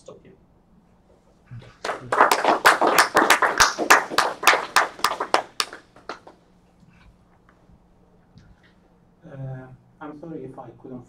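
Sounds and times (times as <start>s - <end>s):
audience applauding: 1.6s - 6.4s.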